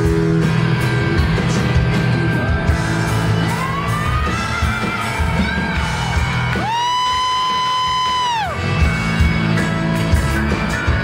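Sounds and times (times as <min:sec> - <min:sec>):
live rock band playing: 0:00.0 - 0:11.0
woman singing: 0:03.3 - 0:05.1.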